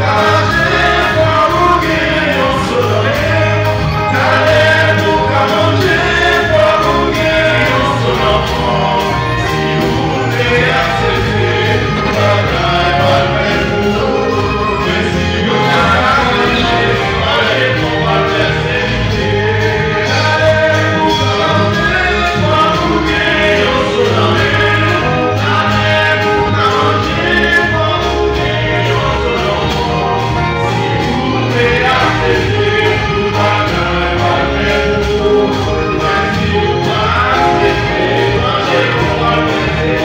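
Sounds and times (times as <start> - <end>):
electric guitar: 0.0 - 40.0
keyboard: 0.0 - 40.0
low bass line: 0.0 - 40.0
vocal group singing a hymn: 0.0 - 40.0.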